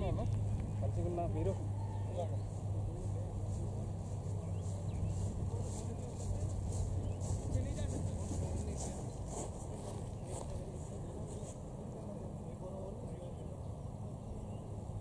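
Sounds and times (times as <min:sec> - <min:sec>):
distant people talking: 0:00.0 - 0:15.0
steady low hum: 0:00.0 - 0:15.0.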